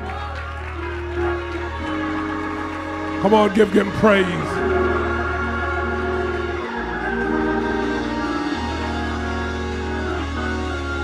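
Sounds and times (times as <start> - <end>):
organ sustained chords: 0.0 - 11.0.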